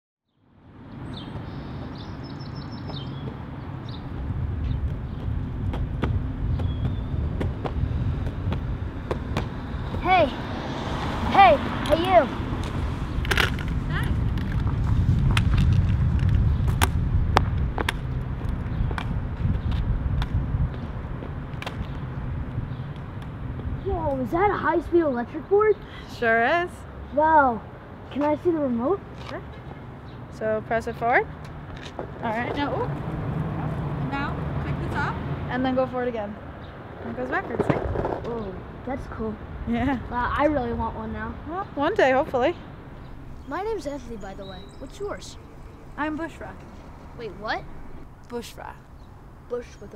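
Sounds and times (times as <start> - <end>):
low traffic rumble: 0.3 - 49.9
metal crutch tapping on asphalt: 11.8 - 20.4.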